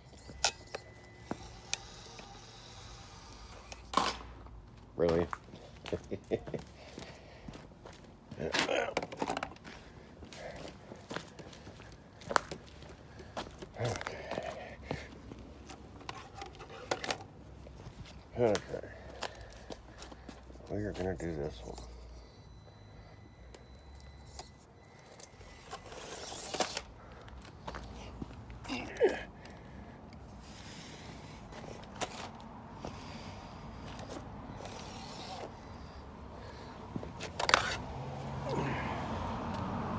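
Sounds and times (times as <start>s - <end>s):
toy truck motor whine: 0.0s - 3.9s, 21.2s - 26.9s, 32.8s - 36.8s
tyres clicking and scraping: 0.0s - 38.6s
footsteps scuffing on concrete: 9.6s - 15.9s, 27.3s - 28.4s.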